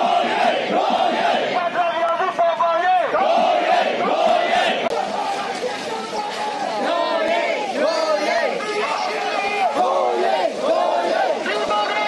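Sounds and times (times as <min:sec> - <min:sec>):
crowd shouting slogans: 0:00.0 - 0:12.0.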